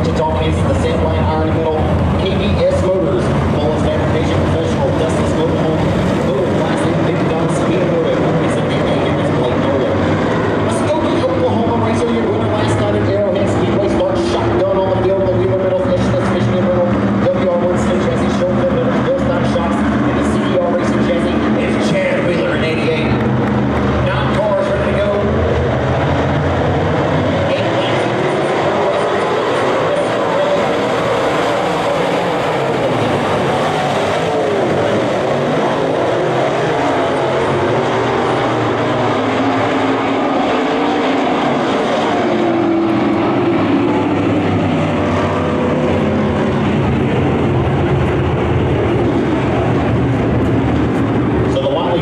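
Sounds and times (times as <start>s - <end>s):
race car engines roaring: 0.0s - 52.0s.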